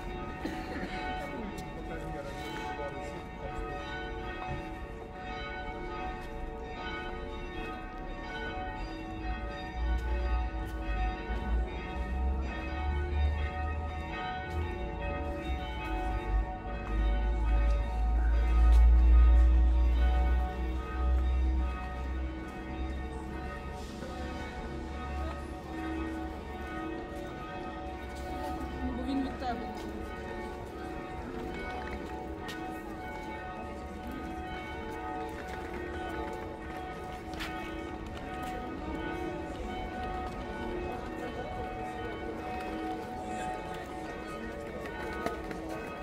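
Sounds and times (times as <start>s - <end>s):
church bells ringing: 0.0s - 46.0s.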